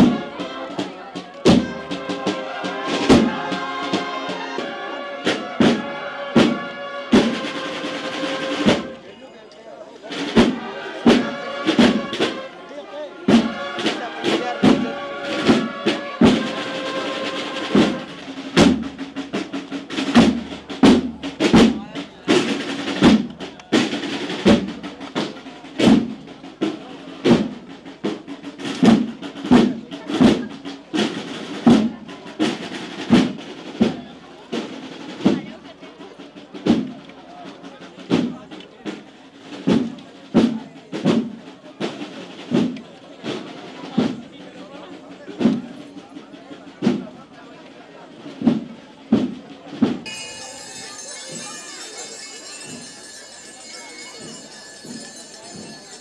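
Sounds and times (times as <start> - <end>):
drums steady beat: 0.0 - 9.2, 10.0 - 56.0
brass band march melody: 0.0 - 38.3, 49.2 - 56.0.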